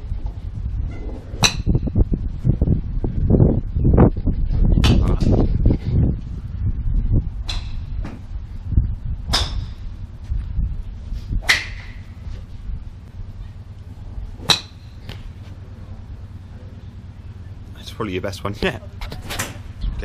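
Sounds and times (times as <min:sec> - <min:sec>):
low uneven rumble: 0:00.0 - 0:20.0
golf clubs striking balls: 0:01.0 - 0:02.0, 0:07.4 - 0:08.4, 0:09.2 - 0:10.4, 0:11.4 - 0:17.4.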